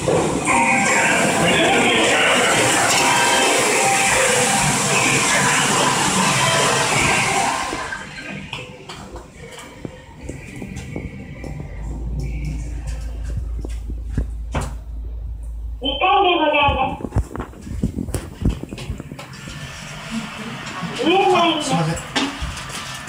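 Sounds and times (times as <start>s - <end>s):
background noise with music: 0.0s - 14.5s
elevator running hum: 0.0s - 23.0s.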